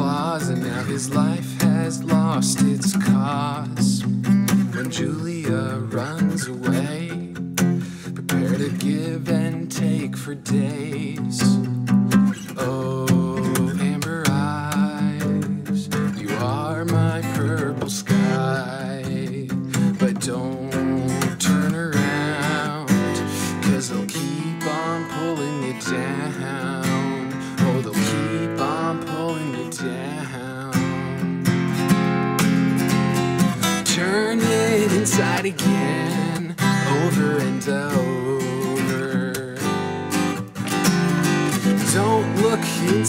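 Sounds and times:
acoustic guitar strummed with pick: 0.0 - 43.0.

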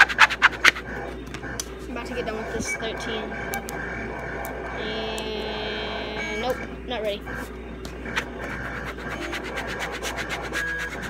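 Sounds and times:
squeegee scraping over vinyl: 0.0 - 1.2, 7.4 - 11.0.

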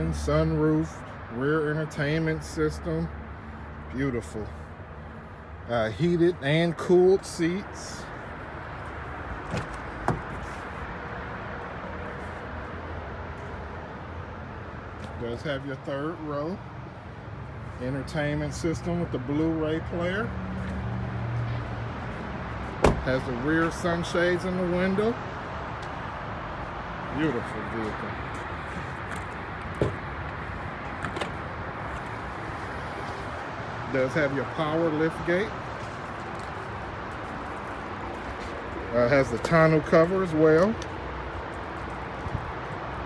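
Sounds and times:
car door knocks: 9.5 - 10.3, 22.8 - 23.0.

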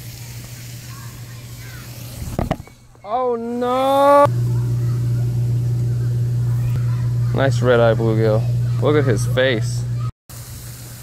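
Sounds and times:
outdoor background hiss: 0.0 - 6.9, 7.6 - 11.0
steady low hum: 4.2 - 10.1.

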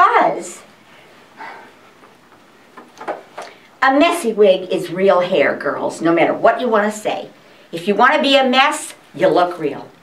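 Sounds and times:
soft breath: 0.9 - 1.9.

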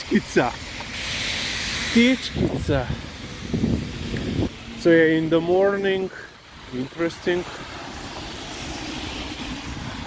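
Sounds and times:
tyres hissing on wet road: 0.0 - 10.0.

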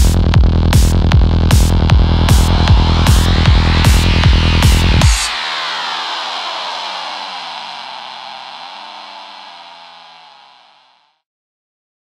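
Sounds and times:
synth wash with sliding tones: 1.2 - 11.1.

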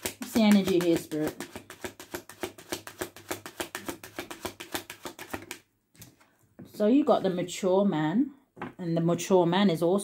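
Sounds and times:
cards being shuffled: 0.0 - 6.2.

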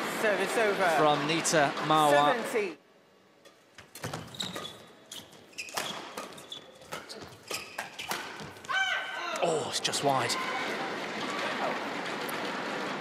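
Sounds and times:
shoes squeaking on court: 3.8 - 8.8.

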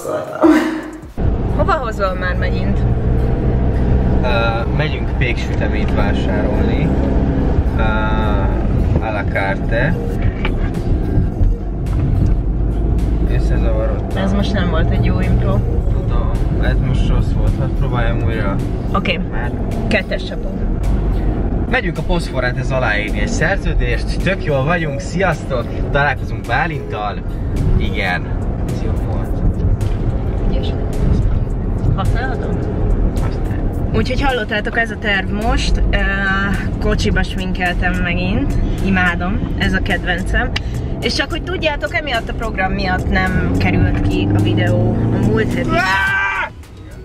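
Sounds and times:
person speaking: 0.0 - 1.1
car road and engine rumble: 0.0 - 47.0
brief vocal sound: 0.3 - 1.2
music with a beat: 8.7 - 13.4.

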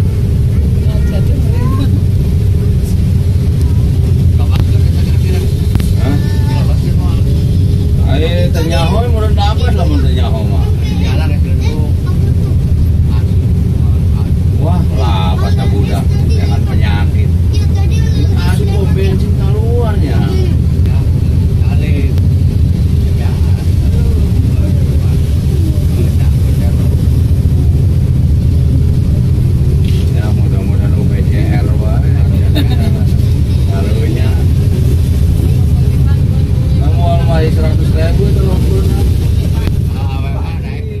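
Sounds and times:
indistinct voices talking: 0.0 - 41.0
tyres on road: 0.0 - 41.0
vehicle engine rumble: 0.0 - 41.0.

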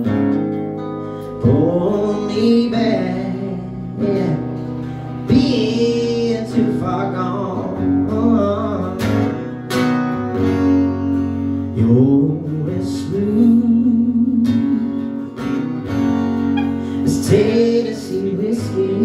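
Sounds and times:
acoustic guitar strumming: 0.0 - 19.0
man singing: 1.3 - 9.4, 11.6 - 15.8, 16.7 - 19.0.

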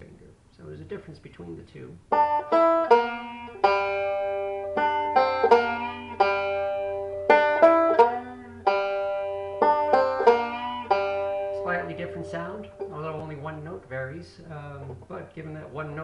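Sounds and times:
banjo plucked notes: 2.1 - 16.0.

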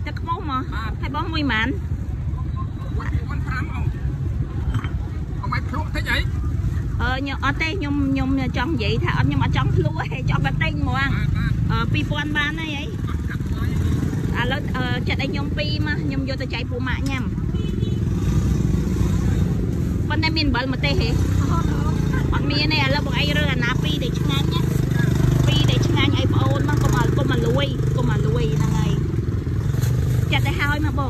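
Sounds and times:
people talking: 0.0 - 1.8, 4.7 - 6.3, 7.0 - 17.4, 20.1 - 29.1, 30.3 - 31.0.

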